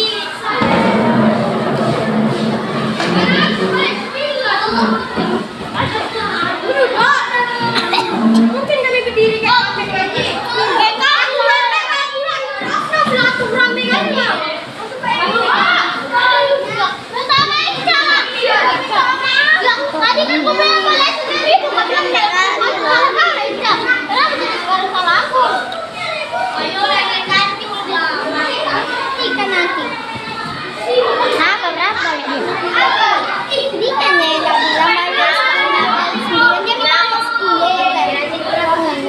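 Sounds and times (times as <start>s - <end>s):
children talking and calling out: 0.0s - 39.0s.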